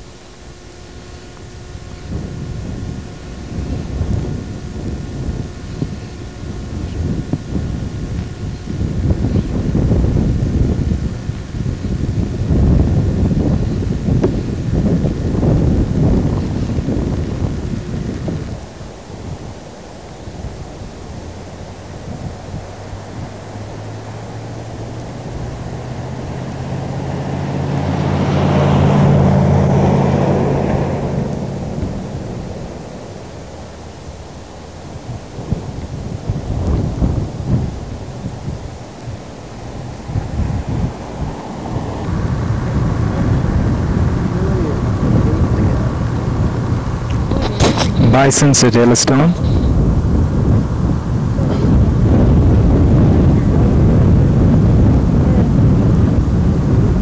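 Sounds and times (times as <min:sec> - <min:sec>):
wind buffeting microphone: 0:00.0 - 0:57.0
vehicle passing: 0:22.8 - 0:34.2, 0:39.0 - 0:57.0.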